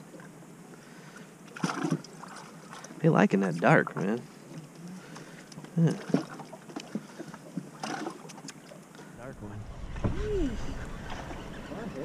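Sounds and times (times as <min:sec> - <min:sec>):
low rumble: 0:09.2 - 0:12.0
wind buffeting microphone: 0:09.2 - 0:12.0.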